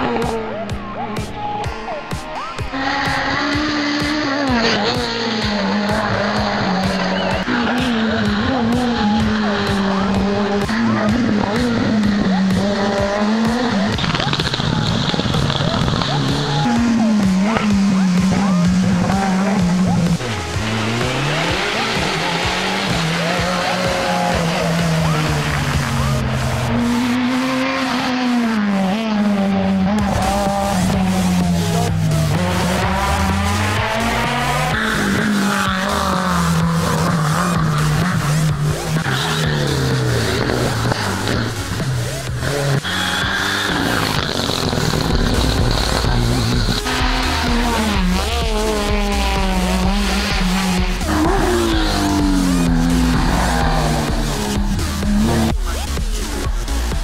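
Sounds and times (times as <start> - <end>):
background music with steady beat: 0.0 - 57.0
rally car engines revving: 0.0 - 57.0.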